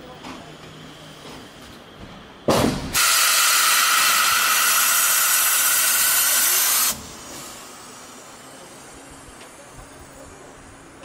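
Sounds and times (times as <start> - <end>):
compressed air hissing: 2.9 - 9.2.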